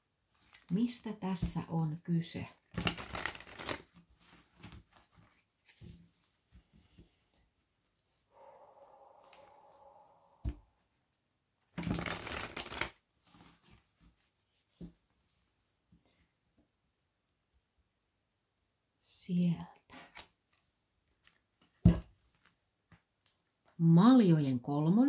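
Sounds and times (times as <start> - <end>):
cards shuffled by hand: 2.7 - 5.9, 11.8 - 13.8.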